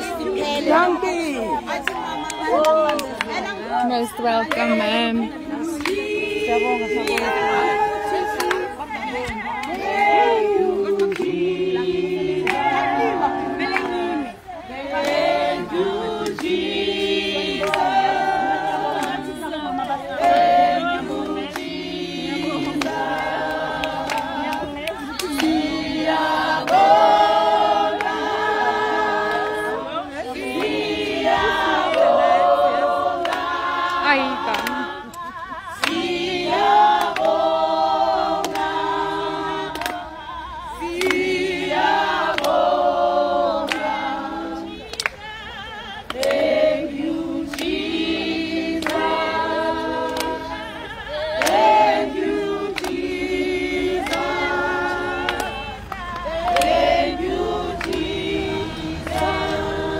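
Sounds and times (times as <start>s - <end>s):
group singing a cappella: 0.0s - 59.9s
hand claps: 1.7s - 4.8s, 5.6s - 6.2s, 6.9s - 11.5s, 12.4s - 14.1s, 14.9s - 16.8s, 17.5s - 40.2s, 40.8s - 42.8s, 43.5s - 58.4s, 59.0s - 59.8s.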